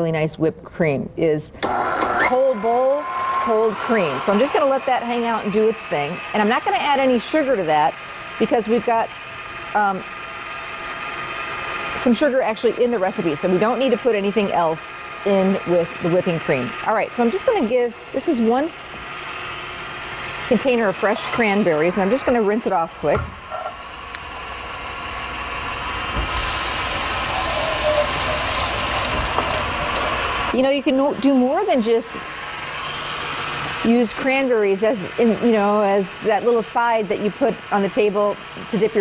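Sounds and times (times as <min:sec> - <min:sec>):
stand mixer whirring: 0:01.6 - 0:22.6, 0:24.0 - 0:30.6
faucet running water: 0:26.3 - 0:30.6.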